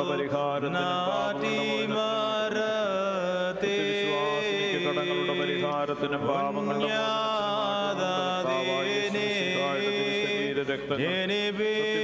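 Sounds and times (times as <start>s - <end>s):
voices singing liturgical chant: 0.0s - 12.0s.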